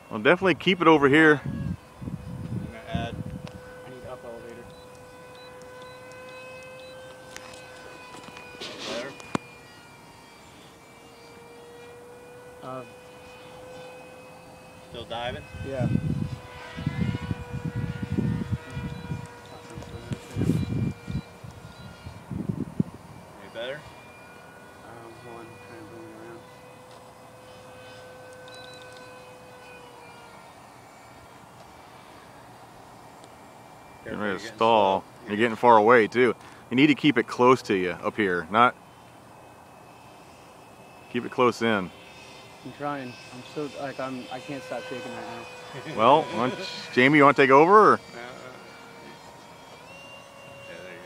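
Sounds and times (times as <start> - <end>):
electric ducted fan whining: 0.0 - 51.0
wind hiss on microphone: 1.4 - 4.0, 15.0 - 23.6.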